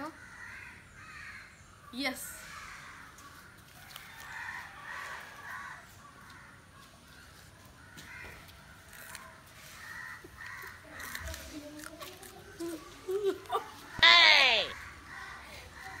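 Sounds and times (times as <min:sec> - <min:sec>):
crows cawing: 0:00.0 - 0:01.6, 0:02.4 - 0:11.4, 0:14.0 - 0:16.0.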